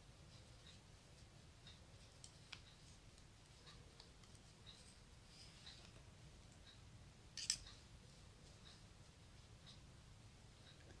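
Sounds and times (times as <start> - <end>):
knitting needles clicking: 0.4 - 6.8.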